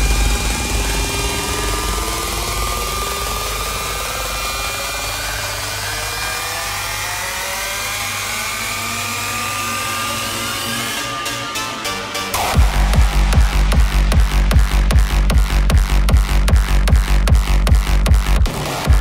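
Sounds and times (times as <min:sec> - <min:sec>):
held low bass tone: 0:00.0 - 0:07.0, 0:12.4 - 0:19.0
synth riser climbing in pitch: 0:00.0 - 0:17.6.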